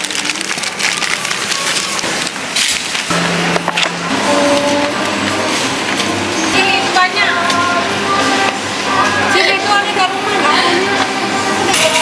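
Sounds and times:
plastic bags crinkling: 0.0s - 3.8s.

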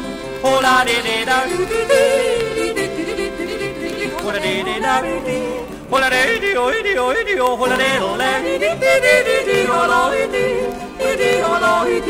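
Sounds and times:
person singing: 0.0s - 12.0s
person yodeling: 0.4s - 12.0s.

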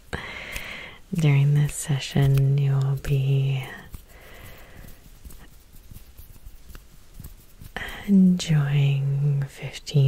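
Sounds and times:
skin rustling: 0.0s - 10.0s.

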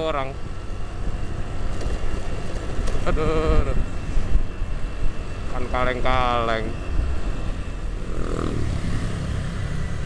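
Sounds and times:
motorcycle running: 0.8s - 10.0s.

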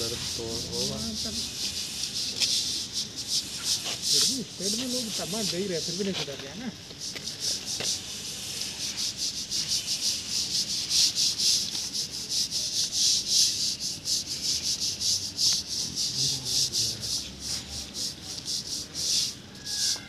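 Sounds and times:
brush scrubbing wet plaster: 0.0s - 20.0s.

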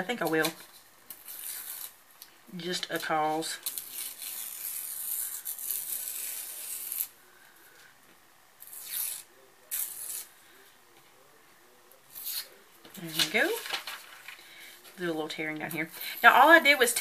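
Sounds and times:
paper being torn by hand: 1.1s - 2.0s, 3.6s - 7.1s, 8.6s - 10.3s, 12.1s - 14.1s.

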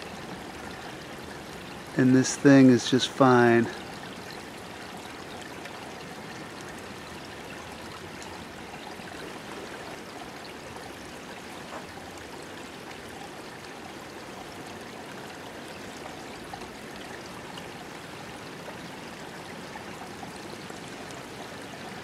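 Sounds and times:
small creek trickling: 0.0s - 22.0s.

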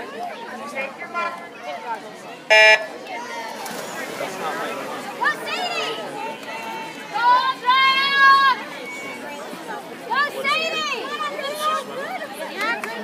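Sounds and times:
spectators talking and shouting: 0.0s - 13.0s
electronic starting beep: 2.5s - 2.9s.

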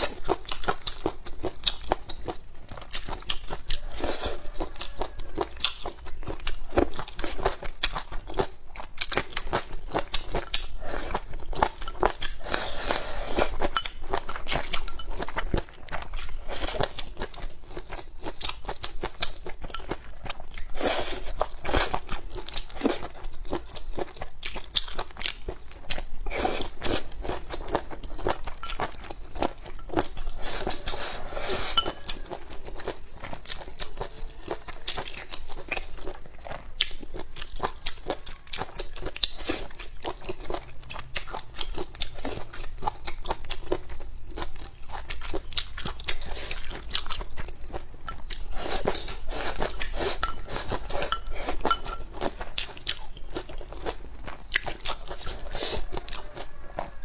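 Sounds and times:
crunchy chewing: 0.0s - 57.0s.

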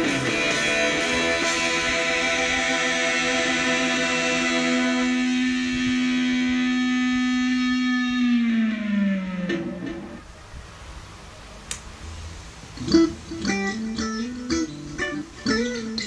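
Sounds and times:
electric guitar sustained note: 0.0s - 10.3s, 12.8s - 16.0s.

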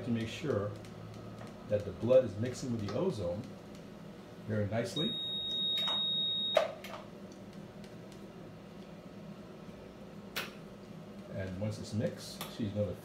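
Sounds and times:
high electronic beep: 5.0s - 6.6s.

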